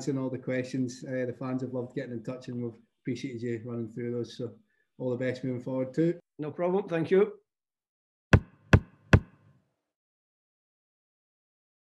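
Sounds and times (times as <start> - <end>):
sharp percussive hits: 8.4 - 9.4.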